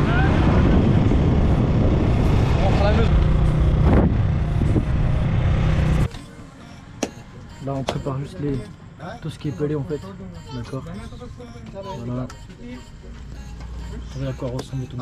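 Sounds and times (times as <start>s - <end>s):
wind noise on microphone: 0.0s - 3.0s.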